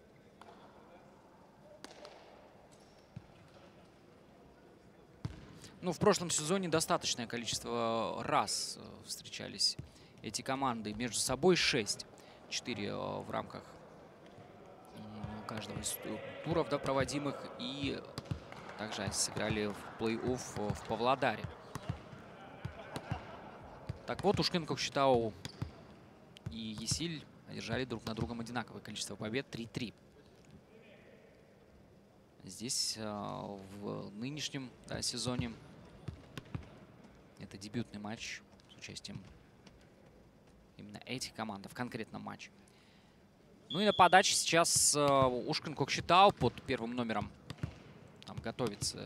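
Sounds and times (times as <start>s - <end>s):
faint hall ambience: 0.0s - 49.0s
volleyball bouncing on floor: 1.8s - 2.3s, 5.2s - 5.6s, 17.9s - 27.0s, 35.3s - 36.8s, 44.7s - 49.0s.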